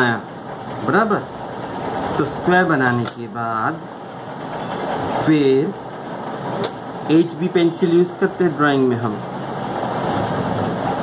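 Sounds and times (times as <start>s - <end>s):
steady fan noise: 0.0s - 11.0s.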